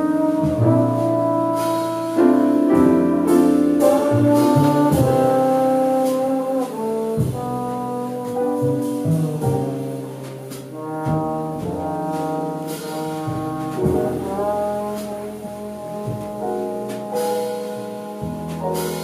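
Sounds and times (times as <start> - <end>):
drums: 0.0 - 19.0
piano: 0.0 - 19.0
trombone jazz melody: 0.0 - 19.0
upright bass: 0.0 - 19.0.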